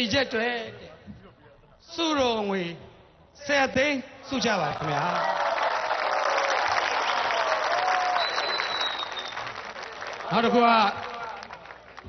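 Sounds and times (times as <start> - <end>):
large audience applauding: 4.6 - 12.0.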